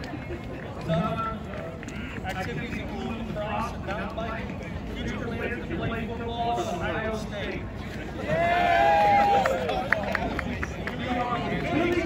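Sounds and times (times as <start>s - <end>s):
low outdoor background noise: 0.0s - 12.0s.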